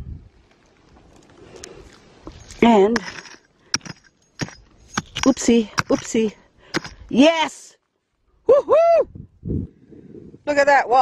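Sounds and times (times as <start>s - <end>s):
digging tool striking stony soil: 2.2s - 7.5s.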